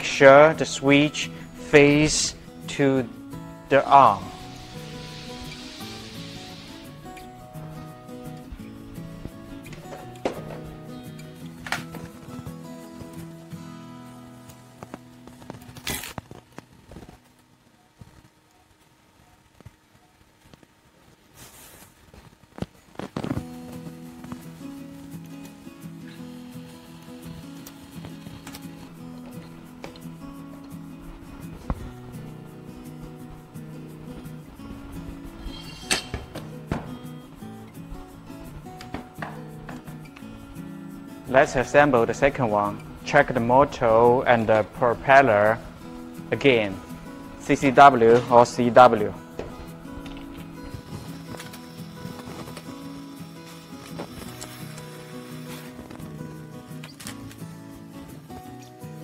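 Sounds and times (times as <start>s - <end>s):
background music: 0.0s - 20.8s, 22.5s - 59.0s.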